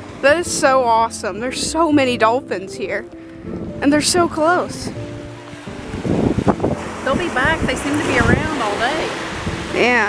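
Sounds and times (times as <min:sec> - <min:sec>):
background music steady notes: 0:00.0 - 0:10.0
small waves washing onto shore: 0:00.0 - 0:10.0
wind on microphone: 0:00.1 - 0:10.0.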